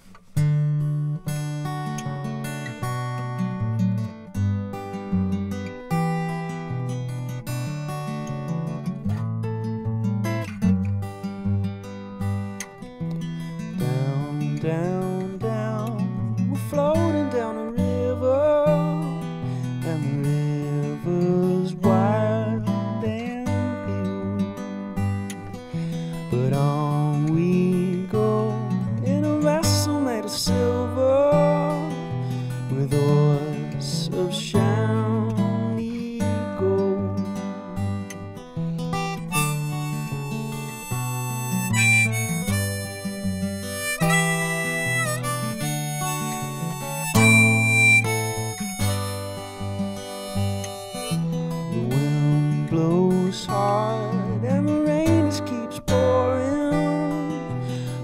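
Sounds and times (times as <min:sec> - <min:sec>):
strummed acoustic guitar: 0:00.0 - 0:58.0
harmonica playing: 0:38.9 - 0:51.5.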